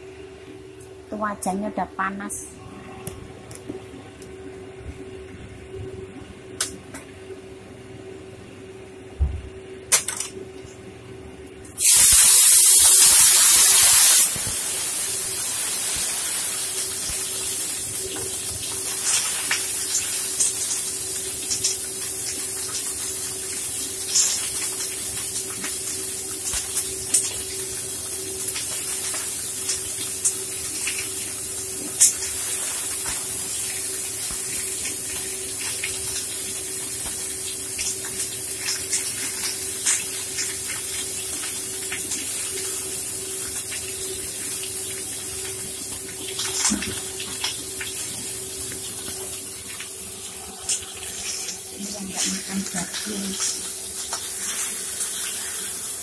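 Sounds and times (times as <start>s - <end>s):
oil sizzling in frying pan: 11.8s - 56.0s.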